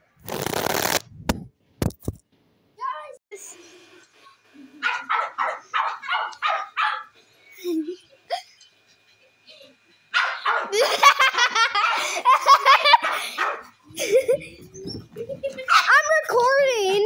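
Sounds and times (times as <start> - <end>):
dog barking: 4.8 - 7.1, 10.1 - 10.8, 11.8 - 12.1, 12.9 - 13.7, 15.7 - 16.0
loud laughter: 10.4 - 15.8.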